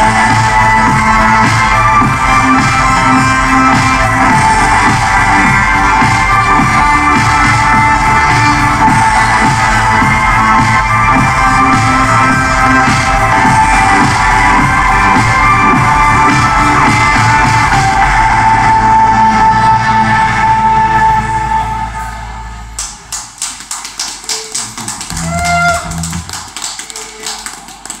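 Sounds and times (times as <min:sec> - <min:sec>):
audience clapping: 0:22.8 - 0:28.0.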